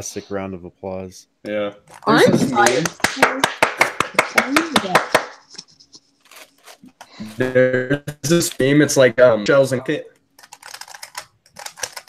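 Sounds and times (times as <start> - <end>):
puzzle cube layers clicking: 10.4 - 12.0.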